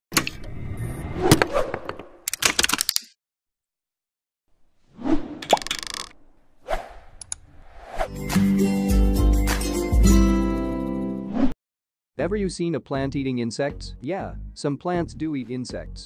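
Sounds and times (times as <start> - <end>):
rattle of sharp clicks: 5.4 - 6.2.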